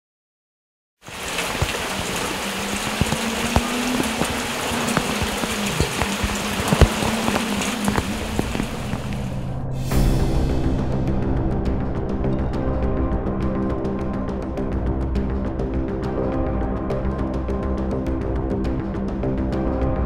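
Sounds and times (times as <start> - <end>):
rain falling on leaves: 1.0 - 9.4.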